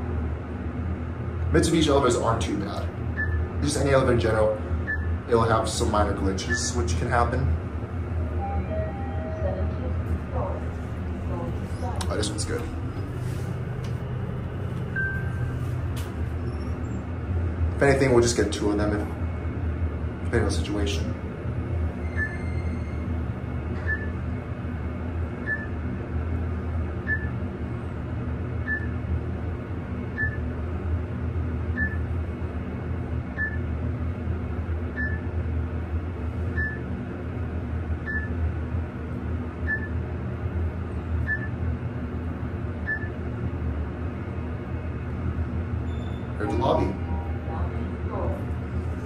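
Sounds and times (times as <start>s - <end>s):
elevator car humming: 0.0s - 49.0s
short high elevator beeps: 8.4s - 9.8s, 22.0s - 22.9s, 38.1s - 38.4s, 41.2s - 41.5s.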